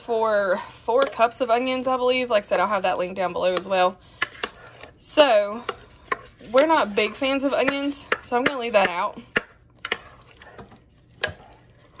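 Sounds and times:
spoon stirring food in a pot: 0.0 - 12.0.

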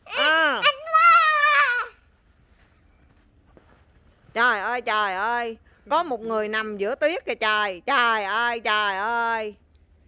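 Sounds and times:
small child crying aah: 0.1 - 2.0.

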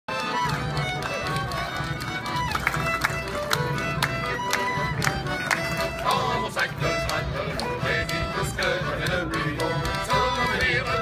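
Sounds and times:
button accordion: 0.1 - 11.0
fiddle playing: 0.1 - 11.0.

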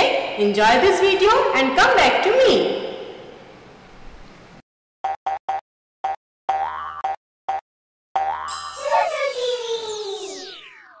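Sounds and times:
bouncy boing notes: 6.5 - 7.2, 8.2 - 8.8
sparkling shimmer: 8.5 - 10.6
rising tone: 8.7 - 11.0.

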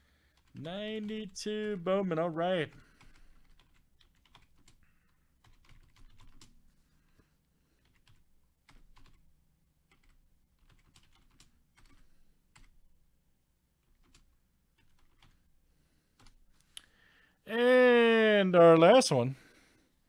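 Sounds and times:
typing on computer keyboard: 0.3 - 1.8, 2.6 - 6.6, 7.8 - 9.3, 9.9 - 12.8, 13.8 - 15.5, 16.2 - 16.4.

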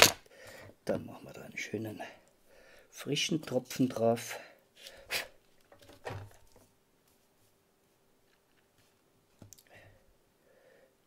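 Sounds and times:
soft clicks and rustles: 5.4 - 9.7.

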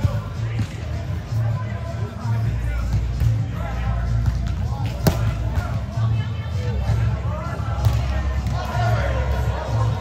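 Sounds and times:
background music: 0.0 - 10.0
chatter in a large hall: 0.0 - 10.0
volleyball slap: 4.2 - 5.7.

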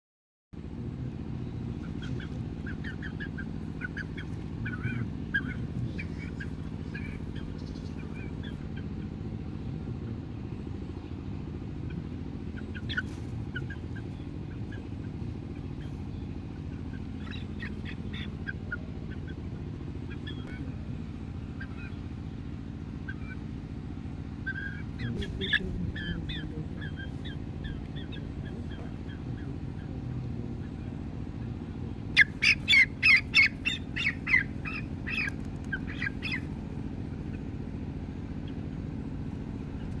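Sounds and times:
low background rumble: 0.6 - 40.0
young chicken squawking: 1.7 - 10.2, 11.7 - 23.6, 24.3 - 37.6, 38.3 - 38.8.

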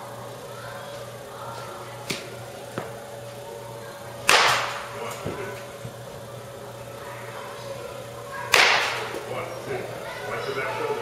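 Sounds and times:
bat cracking baseball: 4.2 - 5.6, 8.5 - 9.3.

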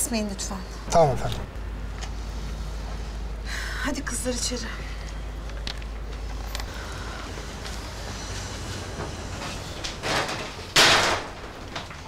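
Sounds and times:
door opening scrape: 6.8 - 11.6.

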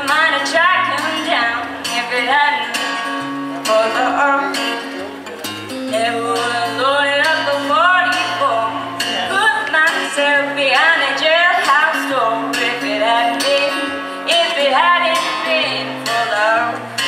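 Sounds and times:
woman singing country song: 0.0 - 4.9, 5.7 - 17.0
strummed acoustic guitar: 0.0 - 17.0.

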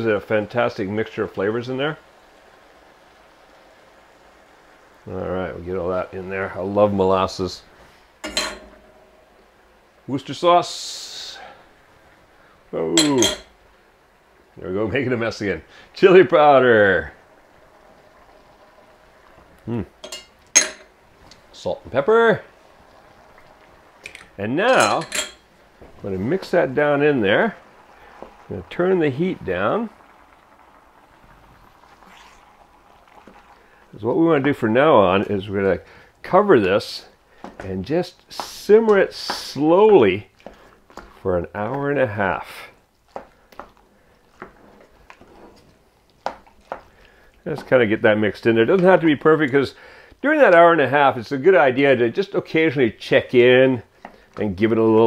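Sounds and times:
pot simmering: 0.0 - 55.0
wooden spoon stirring thick mixture: 33.1 - 49.8, 53.4 - 55.0.

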